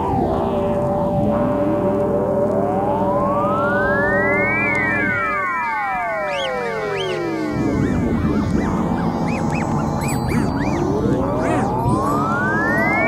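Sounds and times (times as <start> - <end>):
echoing synth tones sliding down: 2.1 - 13.0
synth tone sweeping upward: 2.6 - 13.0
bouncing synth blips: 4.6 - 13.0.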